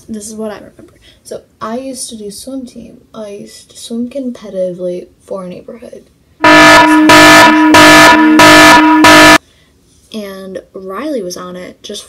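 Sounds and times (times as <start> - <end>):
distorted air horn blasts: 6.4 - 9.4.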